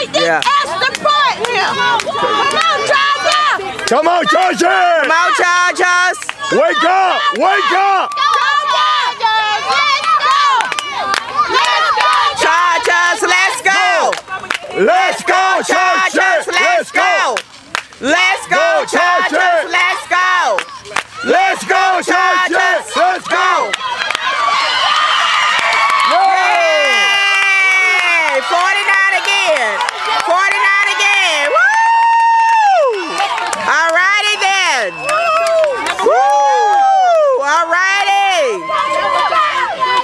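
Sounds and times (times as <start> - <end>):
crowd shouting and cheering: 0.0 - 40.0.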